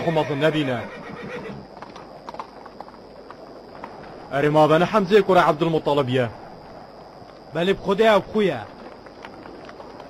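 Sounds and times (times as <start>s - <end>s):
horse whinny: 0.0s - 1.7s
horse hooves clopping: 0.0s - 5.4s, 6.6s - 10.0s.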